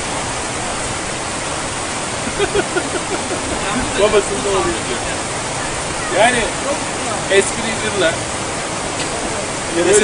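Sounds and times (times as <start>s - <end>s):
running water rushing: 0.0s - 10.0s
man laughing: 2.2s - 4.6s.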